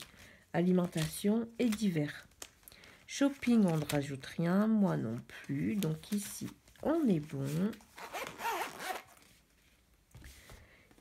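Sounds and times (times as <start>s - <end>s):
wallet zipper closing: 8.0s - 9.2s.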